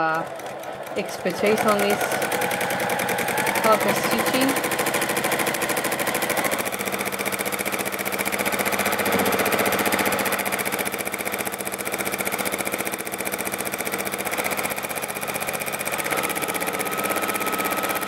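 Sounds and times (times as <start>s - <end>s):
sewing machine clattering: 0.0s - 18.0s.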